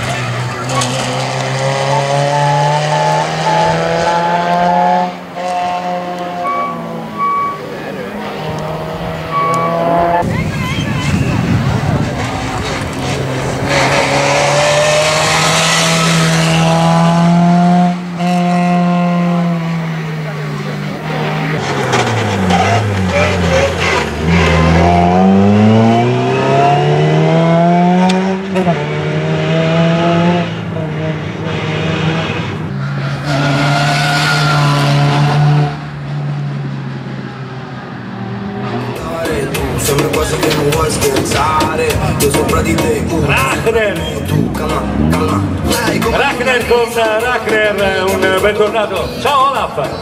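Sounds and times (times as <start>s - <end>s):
rally car engine revving: 0.0s - 50.0s.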